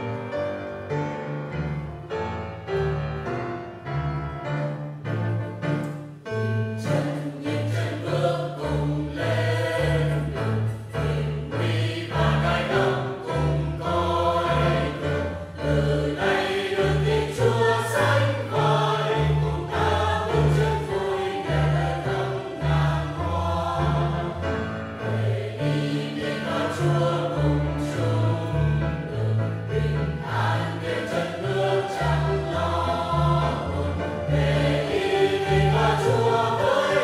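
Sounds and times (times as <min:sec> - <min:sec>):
instrumental accompaniment with bass: 0:00.0 - 0:37.0
mixed choir singing a hymn: 0:06.8 - 0:37.0.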